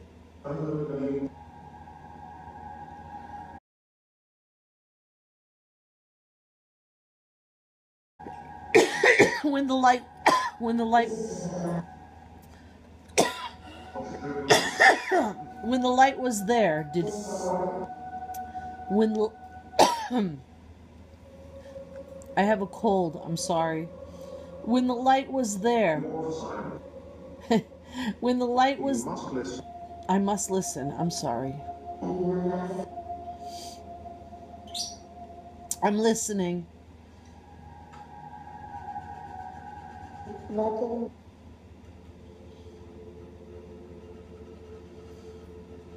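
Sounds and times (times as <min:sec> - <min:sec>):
steady droning tone: 0:00.0 - 0:03.6, 0:08.2 - 0:45.9
woman coughing: 0:08.7 - 0:11.7, 0:13.2 - 0:13.7, 0:14.3 - 0:15.4, 0:19.8 - 0:20.4.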